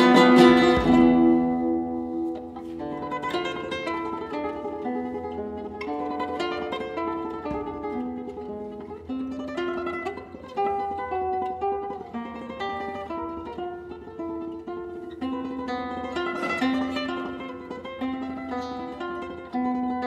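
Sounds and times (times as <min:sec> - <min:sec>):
flamenco guitar playing: 0:00.0 - 0:20.0.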